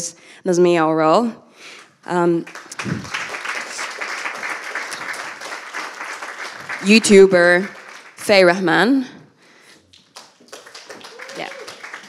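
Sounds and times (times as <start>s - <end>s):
claps: 2.4s - 8.6s, 9.9s - 12.0s.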